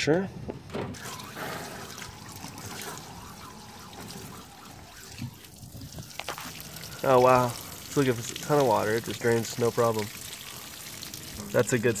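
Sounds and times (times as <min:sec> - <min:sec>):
hose water splashing and trickling: 0:00.9 - 0:12.0.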